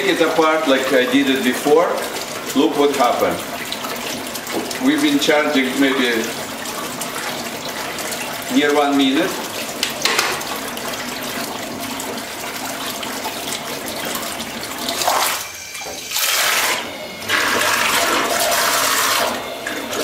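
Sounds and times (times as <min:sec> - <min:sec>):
thruster churning water in sink: 0:00.0 - 0:20.0.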